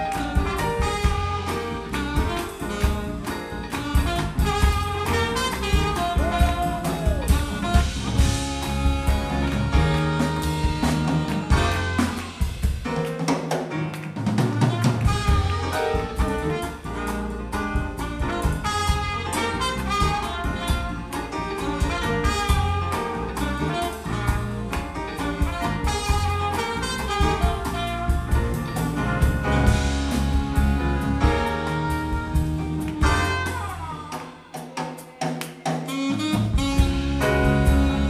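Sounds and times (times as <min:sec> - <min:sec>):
saxophone: 0:00.0 - 0:12.6, 0:14.4 - 0:34.8, 0:35.6 - 0:38.0
trumpet: 0:00.0 - 0:12.8, 0:14.3 - 0:34.8, 0:35.8 - 0:38.0
electric bass: 0:00.0 - 0:13.0, 0:14.3 - 0:34.0, 0:36.1 - 0:38.0
electric guitar: 0:00.0 - 0:34.4, 0:35.9 - 0:38.0
drum kit: 0:00.0 - 0:38.0
keyboards: 0:36.2 - 0:38.0.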